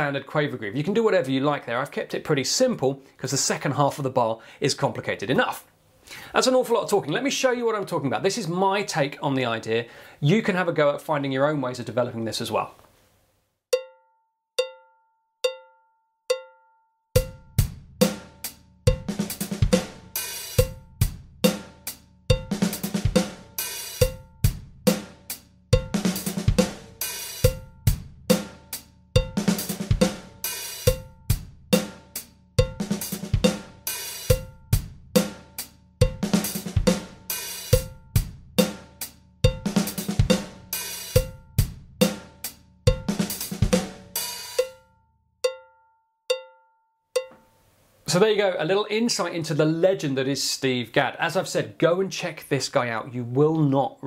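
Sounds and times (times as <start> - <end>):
electronic drum kit groove: 17.2 - 44.8.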